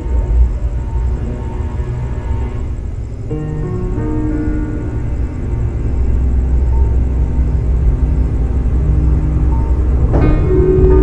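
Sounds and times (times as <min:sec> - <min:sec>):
faint held notes: 0:00.0 - 0:11.0
low rumbling drone: 0:00.0 - 0:11.0.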